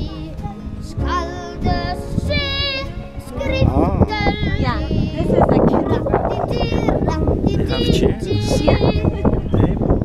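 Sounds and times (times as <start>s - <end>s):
child singing: 0.0s - 9.5s.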